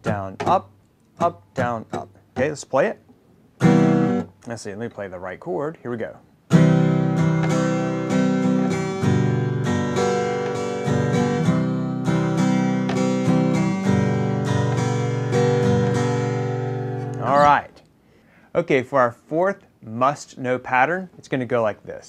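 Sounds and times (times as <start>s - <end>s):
acoustic guitar strumming: 0.0s - 2.8s, 3.6s - 4.4s, 6.5s - 17.7s.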